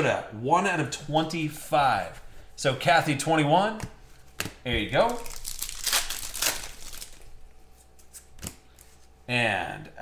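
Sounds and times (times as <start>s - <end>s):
foil wrapper crinkling: 5.0s - 7.4s.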